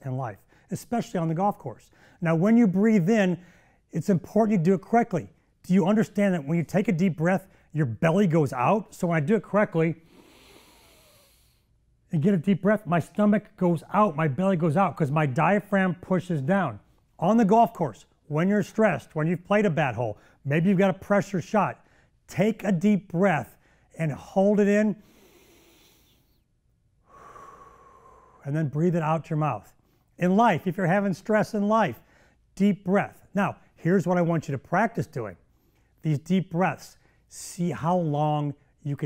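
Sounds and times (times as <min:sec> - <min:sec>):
man breathing in deeply: 0:03.4 - 0:03.8, 0:10.0 - 0:11.7, 0:25.0 - 0:26.4, 0:27.0 - 0:28.5
man exhaling through mouth: 0:27.1 - 0:28.4.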